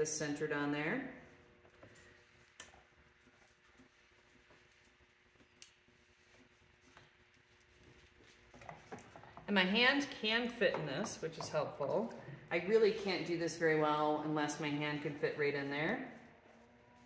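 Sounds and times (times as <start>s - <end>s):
pottery wheel humming: 0.0s - 17.0s.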